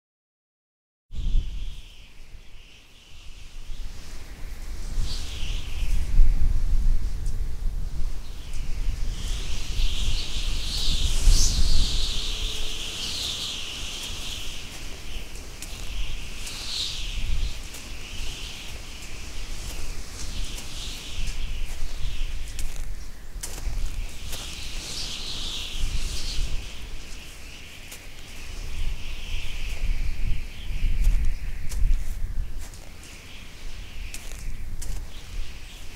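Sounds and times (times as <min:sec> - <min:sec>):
low wind rumble: 0:01.2 - 0:35.9
birds chirping: 0:09.2 - 0:35.9.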